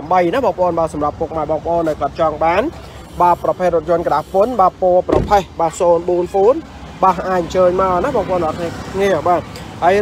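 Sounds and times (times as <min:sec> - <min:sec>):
person talking rapidly: 0:00.0 - 0:10.0.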